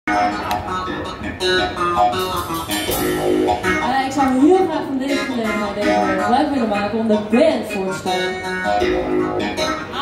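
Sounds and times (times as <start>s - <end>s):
bass guitar: 0.1s - 10.0s
electric guitar: 0.1s - 10.0s
live band playing: 0.1s - 10.0s.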